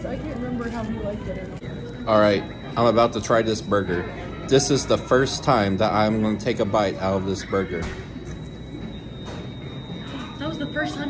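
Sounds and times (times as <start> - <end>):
steady high-pitched tone: 0.0 - 11.0.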